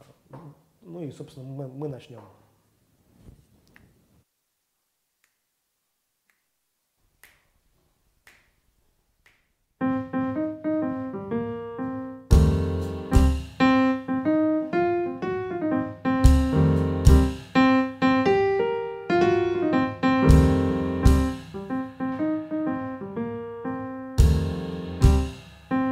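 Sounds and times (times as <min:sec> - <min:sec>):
drum kit playing jazz shuffle: 0:09.8 - 0:25.9
jazz tune on piano and bass: 0:09.8 - 0:25.9.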